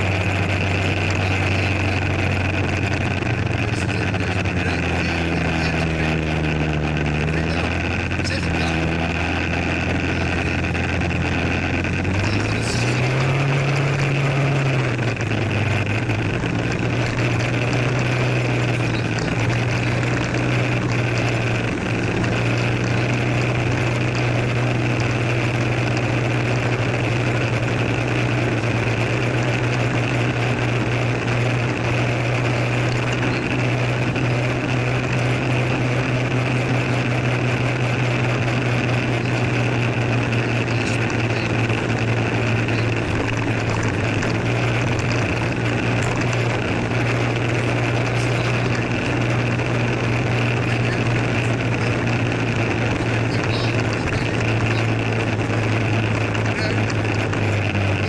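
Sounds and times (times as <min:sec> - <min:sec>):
scooter engine buzzing: 0:00.0 - 0:58.0.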